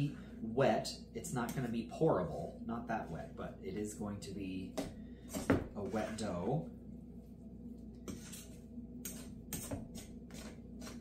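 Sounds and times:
faint steady hum: 0.0 - 11.0
fork scraping mixing bowl: 5.3 - 6.5, 8.0 - 11.0.

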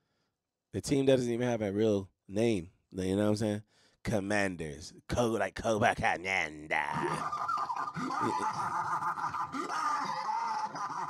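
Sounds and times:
prolonged laughter: 6.8 - 11.0.

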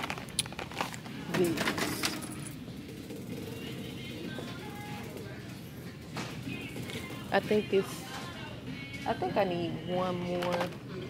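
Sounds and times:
plastic packaging rustling: 0.0 - 2.1.

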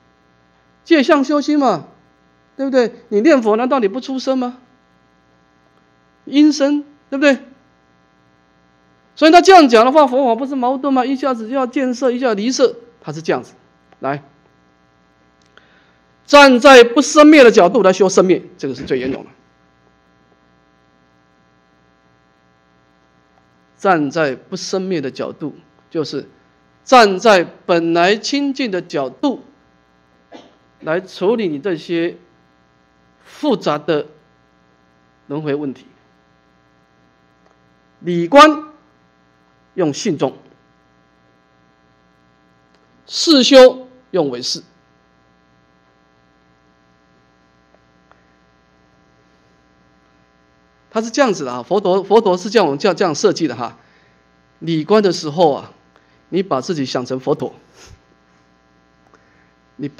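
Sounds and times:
faint mains hum: 0.0 - 59.9
man speaking: 0.9 - 2.0, 2.6 - 4.6, 6.3 - 7.6, 9.2 - 14.3, 16.3 - 19.4, 23.8 - 26.3, 26.9 - 29.6, 30.8 - 32.3, 33.3 - 34.2, 35.3 - 36.0, 38.0 - 38.8, 39.8 - 40.5, 43.1 - 44.8, 51.0 - 53.8, 54.6 - 57.7.

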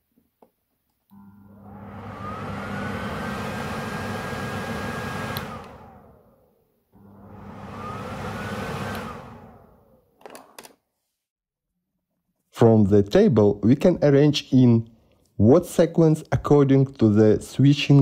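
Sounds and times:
fan motor humming and whining: 1.1 - 6.4, 7.0 - 9.9.

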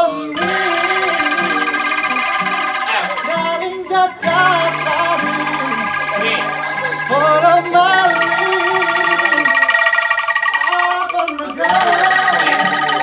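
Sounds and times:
people singing: 0.0 - 9.9, 10.7 - 13.0
acoustic guitar chords: 0.0 - 13.0.

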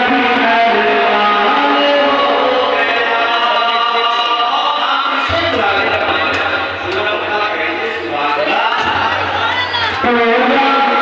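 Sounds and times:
man singing through a microphone: 0.0 - 11.0.

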